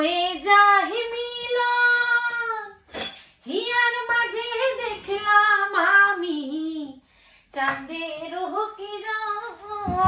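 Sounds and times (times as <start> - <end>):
woman singing unaccompanied: 0.0 - 2.8, 3.4 - 10.0.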